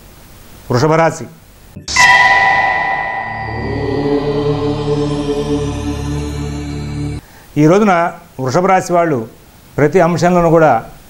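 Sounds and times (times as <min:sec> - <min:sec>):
low chanted drone: 0:01.8 - 0:07.2
bell ringing: 0:01.9 - 0:06.8.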